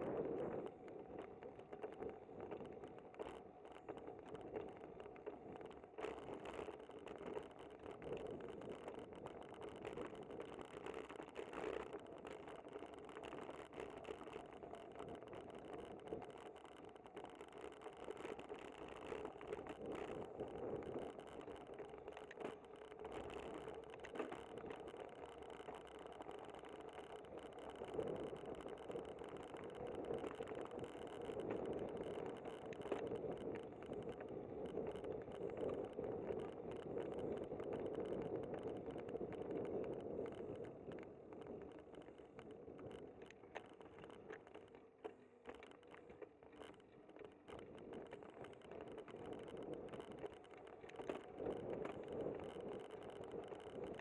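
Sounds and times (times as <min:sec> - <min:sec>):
bicycle rattles and clicks: 0:00.0 - 0:54.0
road and wind noise: 0:00.0 - 0:54.0.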